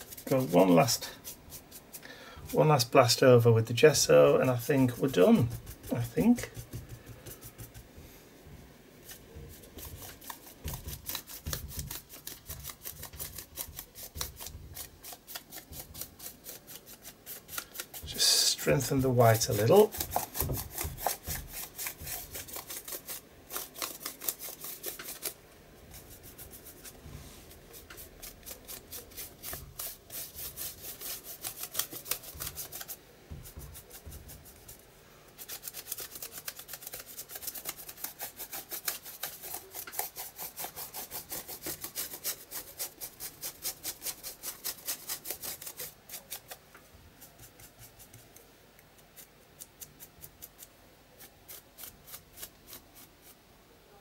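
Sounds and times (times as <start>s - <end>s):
dry brush scrubbing paper: 0.0s - 8.2s, 9.0s - 48.4s, 49.0s - 53.5s.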